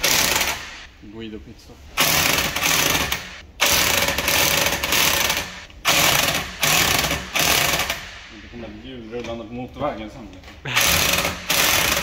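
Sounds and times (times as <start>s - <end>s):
impact wrench bursts: 0.0s - 0.9s, 2.0s - 8.4s, 10.7s - 12.0s.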